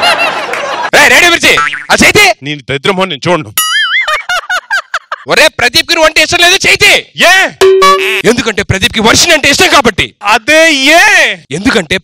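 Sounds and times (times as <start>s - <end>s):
laughter: 0.0s - 1.0s, 3.8s - 5.3s
wobbling comedy sound effect: 1.6s - 1.9s, 7.6s - 8.3s
person speaking: 5.3s - 12.0s.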